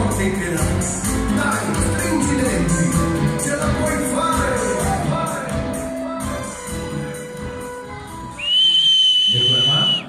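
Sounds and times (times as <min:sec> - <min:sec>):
ballroom tango music: 0:00.0 - 0:09.1
loud high-pitched whistle: 0:08.4 - 0:10.0.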